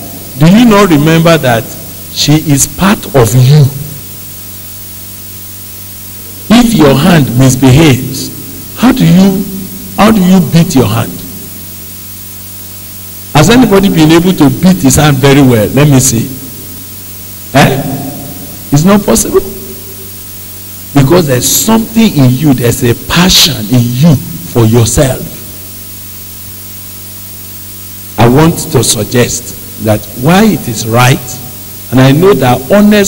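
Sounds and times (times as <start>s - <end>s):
low electrical hum: 0.0s - 33.0s
microphone hiss: 0.0s - 33.0s
man speaking: 0.4s - 4.0s, 6.2s - 11.4s, 13.4s - 16.6s, 17.5s - 19.9s, 20.9s - 25.5s, 28.2s - 33.0s.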